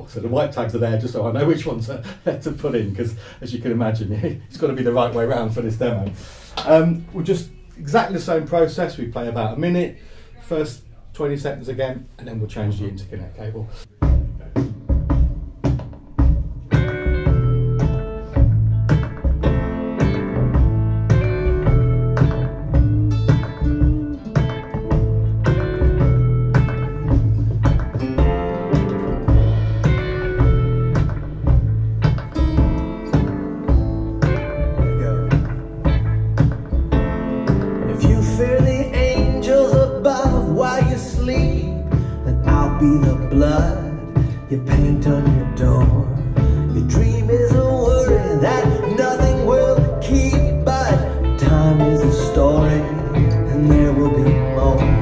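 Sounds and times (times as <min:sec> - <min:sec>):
bass pulse: 0:16.2 - 0:39.6, 0:40.3 - 0:55.0
plucked acoustic guitar: 0:16.2 - 0:55.0
song over loudspeakers: 0:37.5 - 0:55.0.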